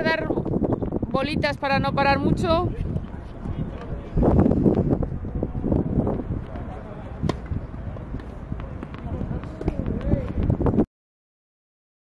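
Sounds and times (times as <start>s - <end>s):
wind rumble on microphone: 0.0s - 10.9s.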